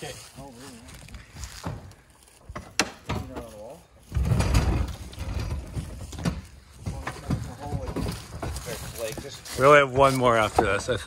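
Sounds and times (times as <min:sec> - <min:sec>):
heavy vehicle rolling on metal floor: 0:04.0 - 0:11.0.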